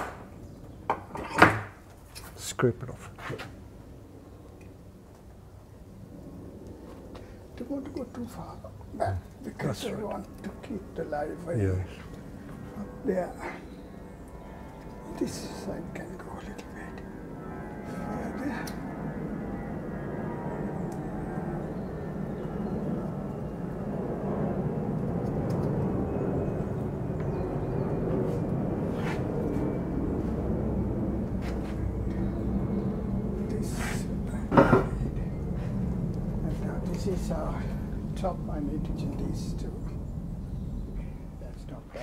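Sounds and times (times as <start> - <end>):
low background rumble: 20.8 - 42.0.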